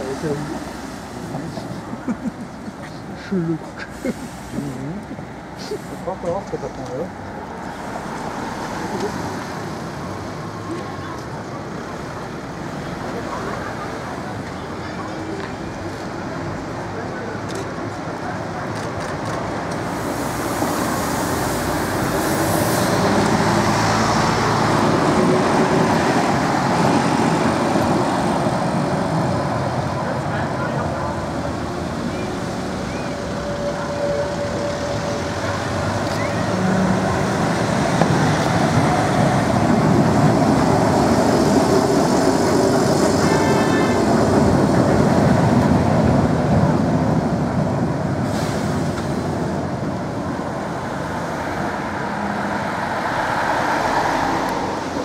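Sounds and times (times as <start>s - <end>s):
passing car traffic: 0.0s - 55.0s
trams running on track: 0.0s - 55.0s.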